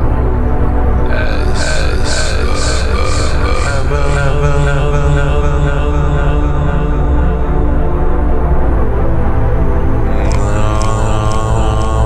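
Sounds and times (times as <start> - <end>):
industrial techno music: 0.0 - 12.0.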